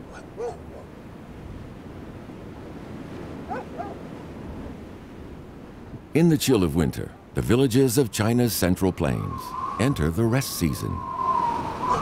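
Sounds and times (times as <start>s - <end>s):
dog barking: 0.0s - 0.9s, 3.5s - 4.0s
wind rumble: 0.0s - 12.0s.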